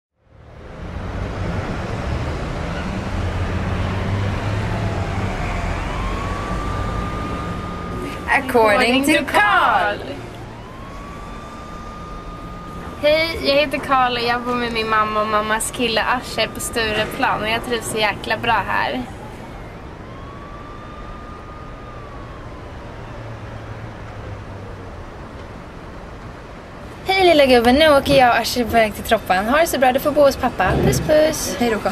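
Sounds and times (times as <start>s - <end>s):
passing cars rumble: 0.2s - 31.9s
faint siren-like tone: 2.6s - 24.8s.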